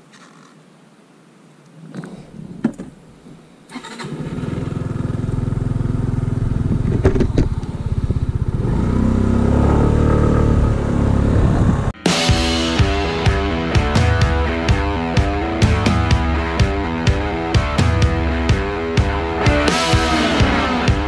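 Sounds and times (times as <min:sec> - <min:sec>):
scooter engine starting and revving: 0:03.7 - 0:12.0.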